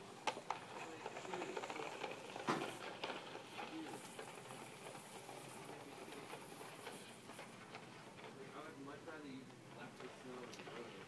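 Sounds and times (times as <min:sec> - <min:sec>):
faint voices: 0:00.0 - 0:11.0
toy cart wheels rattling: 0:00.0 - 0:11.0.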